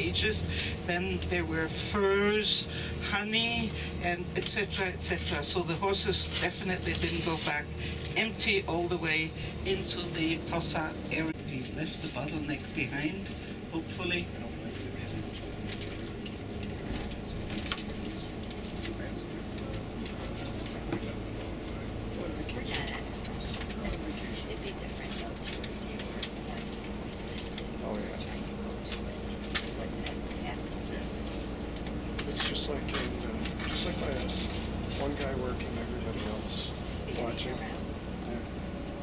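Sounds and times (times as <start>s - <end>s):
engine and road rumble: 0.0s - 39.0s.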